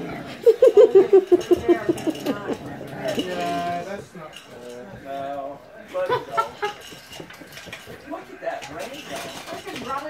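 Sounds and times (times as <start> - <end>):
puppies scuffling: 0.6 - 10.0
claws clicking on tile floor: 6.3 - 10.0.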